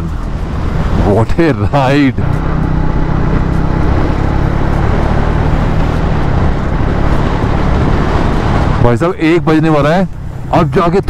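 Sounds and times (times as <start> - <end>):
motorcycle engine cruising: 0.0 - 11.0
wind rush on microphone: 0.0 - 11.0.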